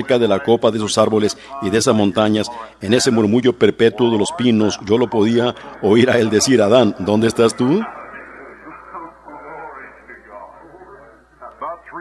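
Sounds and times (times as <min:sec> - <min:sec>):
faint muffled man's voice: 0:04.1 - 0:12.0.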